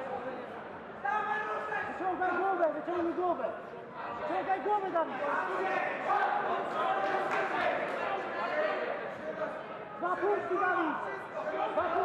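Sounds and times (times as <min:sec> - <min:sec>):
people shouting in echoing hall: 0:04.9 - 0:09.0.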